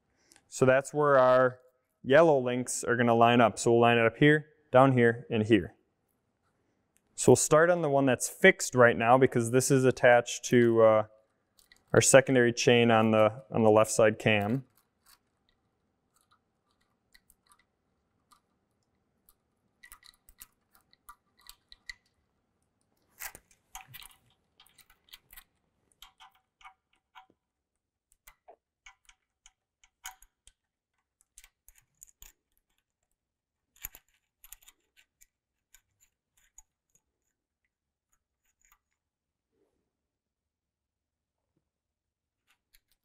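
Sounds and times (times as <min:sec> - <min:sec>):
metallic chain clicks: 0:11.6 - 0:12.0, 0:19.8 - 0:22.2, 0:31.2 - 0:37.3.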